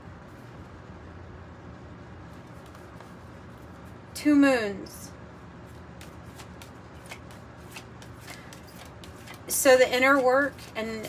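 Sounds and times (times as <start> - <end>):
cards being shuffled: 2.4 - 3.9, 5.7 - 11.0.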